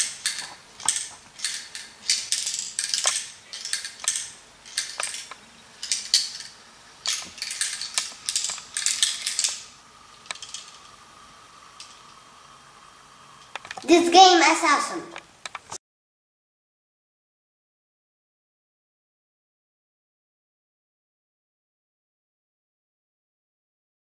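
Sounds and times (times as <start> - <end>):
ball rattling in plastic maze: 0.0 - 10.9.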